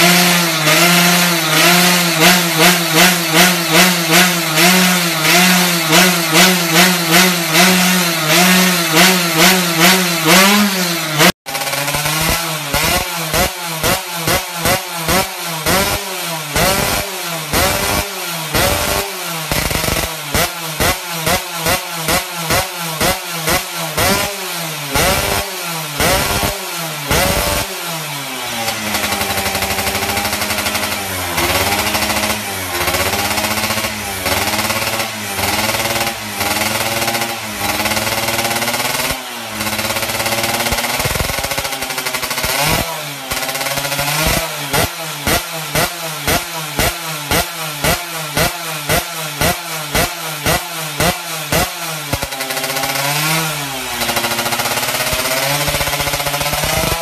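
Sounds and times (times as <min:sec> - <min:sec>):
two-stroke motorcycle engine revving: 0:00.0 - 0:57.0.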